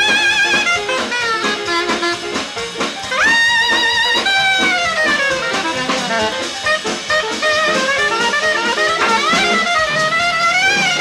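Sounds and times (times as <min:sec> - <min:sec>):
drums: 0:00.0 - 0:11.0
piano: 0:00.0 - 0:11.0
soprano saxophone: 0:00.0 - 0:11.0.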